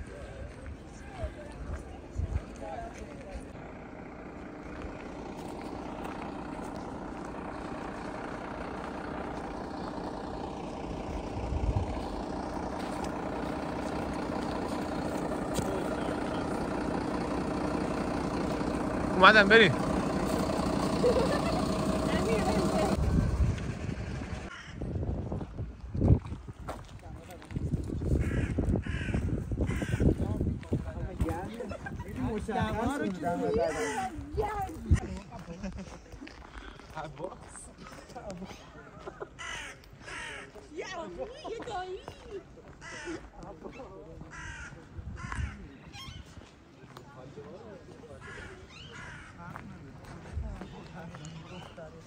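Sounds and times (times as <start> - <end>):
faint voices talking: 0.0 - 7.2, 29.7 - 52.0
truck engine idling: 0.0 - 24.5
crows cawing: 24.4 - 24.8, 28.2 - 30.3, 33.5 - 34.2, 39.2 - 40.8, 42.7 - 43.4, 44.2 - 46.2, 48.2 - 49.6.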